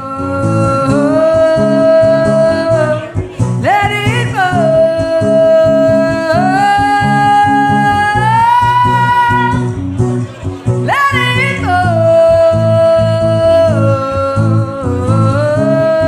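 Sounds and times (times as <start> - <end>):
woman singing long notes: 0.0 - 9.8, 10.9 - 16.0
strummed acoustic guitar: 0.0 - 16.0.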